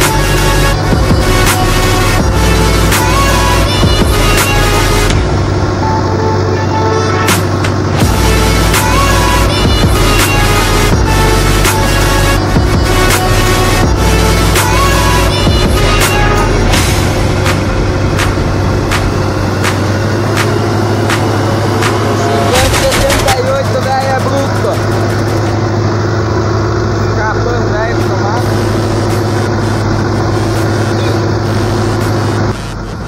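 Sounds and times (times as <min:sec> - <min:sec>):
tractor engine droning: 0:00.0 - 0:33.0
regular ticking: 0:07.3 - 0:33.0
wavering voice-like sound: 0:26.9 - 0:32.8.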